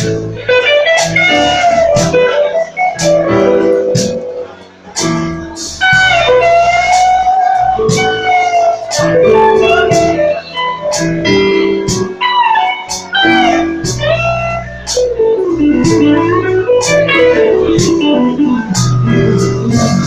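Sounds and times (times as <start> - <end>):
bass guitar: 0.0 - 20.0
drums steady beat: 0.0 - 20.0
electric guitar solo: 0.4 - 4.6, 5.9 - 11.1, 12.2 - 19.4.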